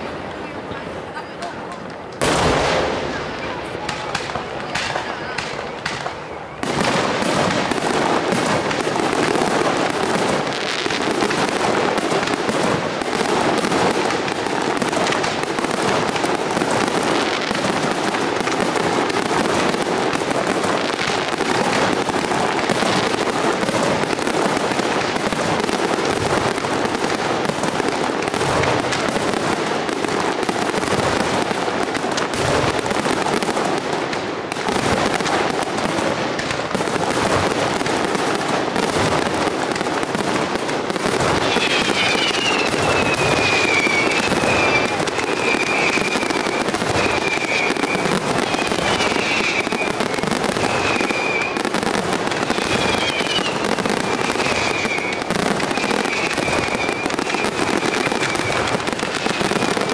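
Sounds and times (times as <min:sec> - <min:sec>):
fireworks bursting in a barrage: 0:00.0 - 0:59.9.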